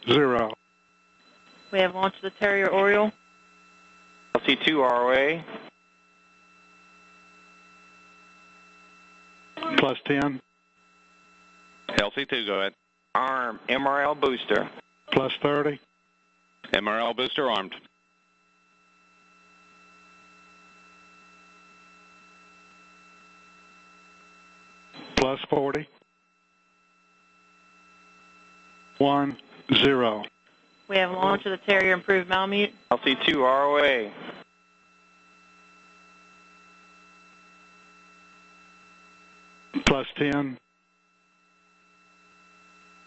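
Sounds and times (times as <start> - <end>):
fixed electronic tones: 0.0 - 3.2, 9.6 - 10.4, 11.9 - 15.8, 28.7 - 35.4
electrical hum: 0.0 - 43.0
faint electrical hum and hiss: 27.1 - 40.6.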